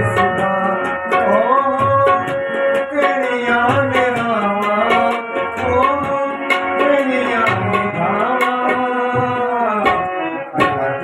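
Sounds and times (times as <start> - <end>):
person singing: 0.0 - 11.0
tabla playing: 0.0 - 11.0.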